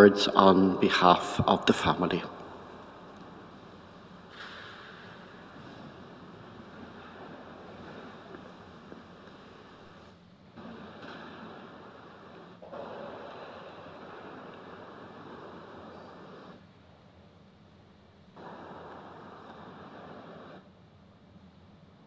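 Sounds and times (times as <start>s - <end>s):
room noise hiss: 0.0s - 22.0s.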